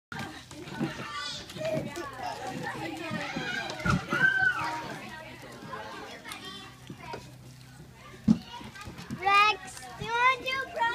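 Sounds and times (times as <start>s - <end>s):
children's voices playing: 0.1s - 10.9s.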